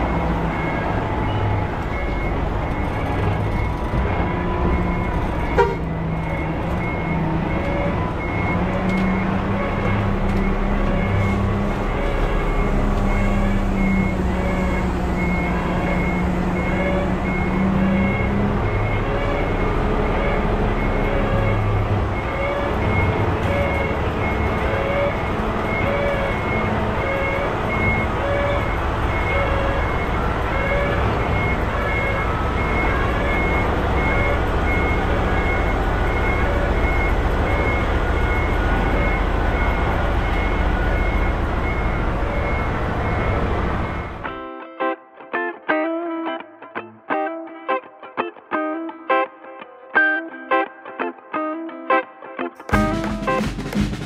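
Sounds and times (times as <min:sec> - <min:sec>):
back-up alarm beeping: 0:00.0 - 0:44.2
truck engine running: 0:00.0 - 0:44.2
plucked guitar music: 0:44.2 - 0:54.0.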